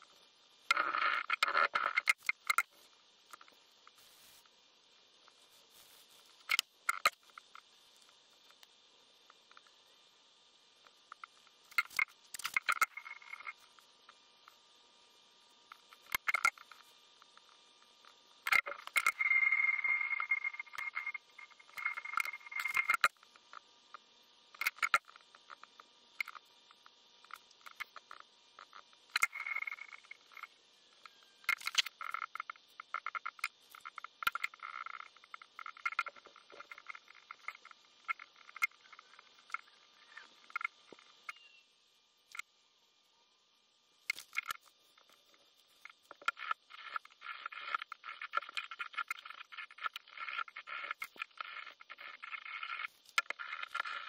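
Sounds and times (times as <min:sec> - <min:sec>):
cloth rubbing metal parts: 0:03.9 - 0:04.5.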